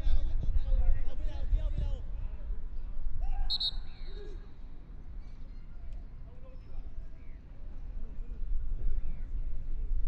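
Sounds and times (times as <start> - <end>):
referee's whistle blasts: 3.5 - 3.9.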